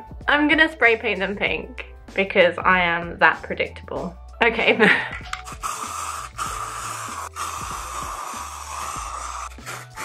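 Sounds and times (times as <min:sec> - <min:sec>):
spray paint can hissing: 0:05.3 - 0:10.0.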